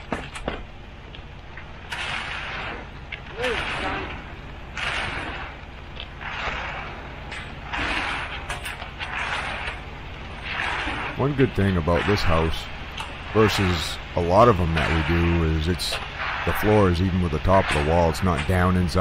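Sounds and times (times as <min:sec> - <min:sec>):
concrete mixer truck running: 0:00.0 - 0:19.0
rakes scraping through wet concrete: 0:01.9 - 0:19.0.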